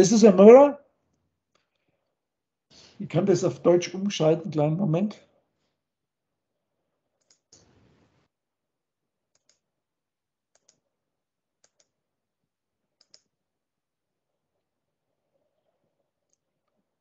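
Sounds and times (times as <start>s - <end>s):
computer mouse clicks: 7.2s - 7.7s, 9.3s - 9.6s, 10.5s - 10.8s, 11.6s - 11.9s, 13.0s - 13.3s.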